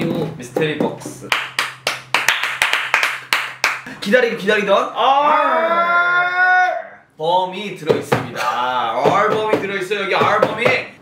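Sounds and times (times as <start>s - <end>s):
hands clapping: 1.2s - 3.9s.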